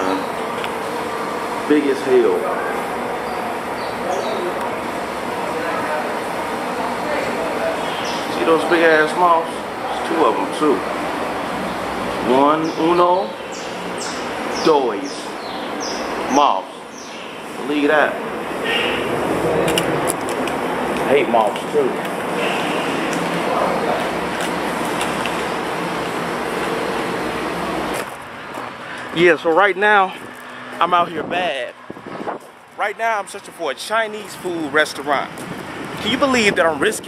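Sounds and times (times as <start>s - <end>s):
steady background noise: 0.0s - 37.0s.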